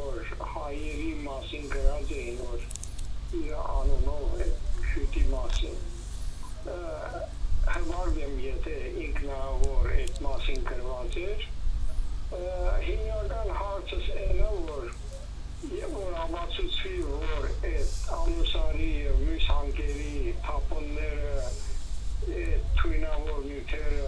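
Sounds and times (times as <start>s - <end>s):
person speaking over telephone: 0.0s - 2.7s, 3.3s - 11.5s, 12.3s - 24.0s
steady low hum: 0.0s - 24.0s.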